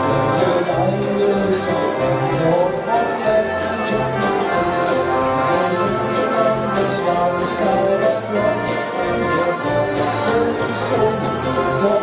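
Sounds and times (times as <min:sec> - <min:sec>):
live dance band playing: 0:00.0 - 0:12.0.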